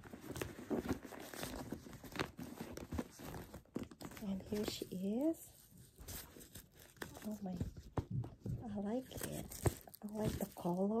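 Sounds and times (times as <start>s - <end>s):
plastic wrapping crinkling: 0.0s - 7.9s, 8.6s - 11.0s.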